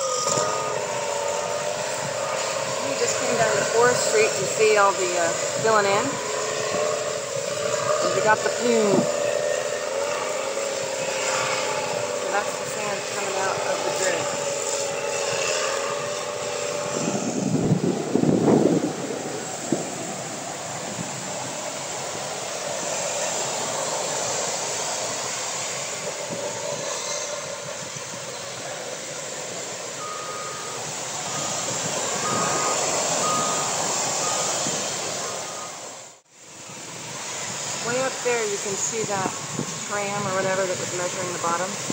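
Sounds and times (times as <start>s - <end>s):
earthmoving machine engine whining: 0.0s - 41.9s
surf washing: 0.0s - 41.9s
wind: 0.0s - 41.9s
backup alarm beeps: 29.9s - 35.9s.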